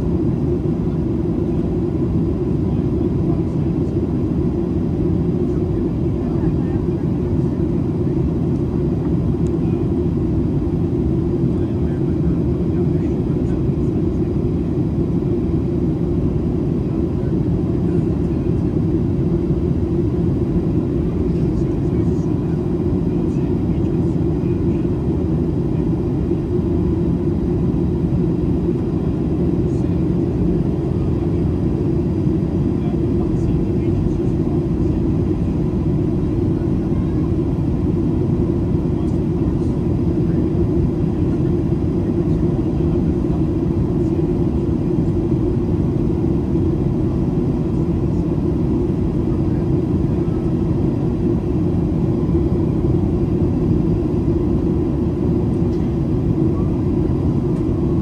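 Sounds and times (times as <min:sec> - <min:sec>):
airplane cabin engine rumble: 0:00.0 - 0:58.0.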